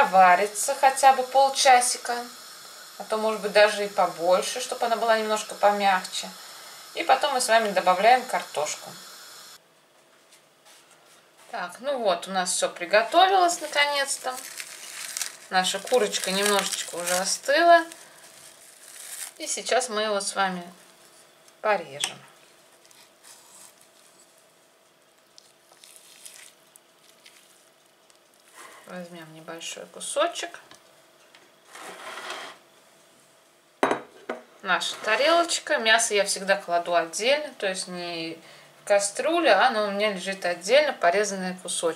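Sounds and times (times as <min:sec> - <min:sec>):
faint room hiss: 0:00.0 - 0:41.9
tableware scraping on table: 0:31.6 - 0:32.6, 0:33.8 - 0:35.2.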